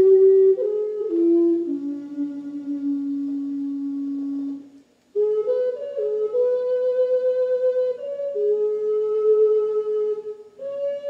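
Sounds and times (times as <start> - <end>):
flute long low note: 0.0 - 11.0.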